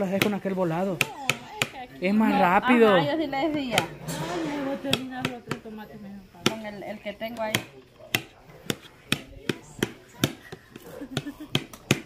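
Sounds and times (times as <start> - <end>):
faint voices talking softly: 0.0 - 11.4.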